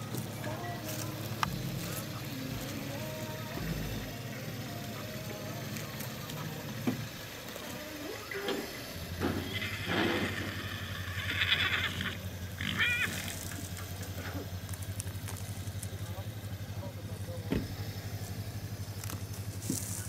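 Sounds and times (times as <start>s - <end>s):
people talking: 0.0s - 10.7s, 15.6s - 20.0s
engine idling: 0.0s - 20.0s.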